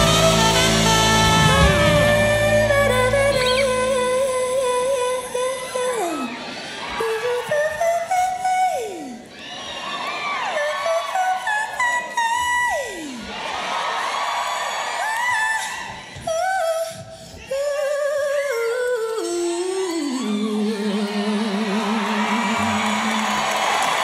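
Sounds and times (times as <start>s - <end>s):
woman singing into microphone: 0.0s - 9.3s, 15.1s - 23.8s
crowd cheering and screaming: 0.0s - 24.0s.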